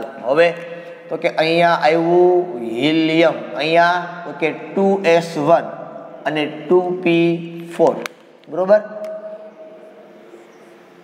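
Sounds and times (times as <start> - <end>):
man's voice: 0.0 - 9.5.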